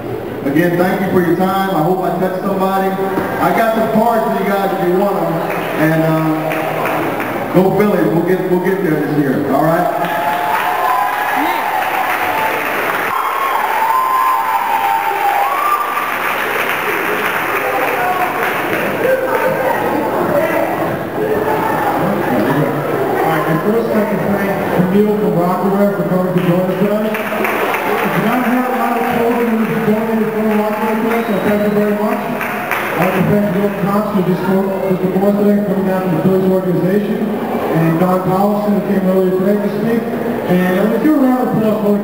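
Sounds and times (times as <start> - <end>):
audience applauding: 5.4 - 7.5, 9.8 - 20.8, 26.2 - 34.4
voices whooping: 9.8 - 24.1.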